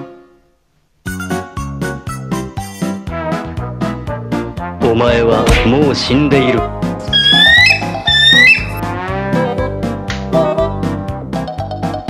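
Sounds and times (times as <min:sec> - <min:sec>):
background music: 0:01.1 - 0:12.0
whistle gliding upward: 0:07.1 - 0:08.8.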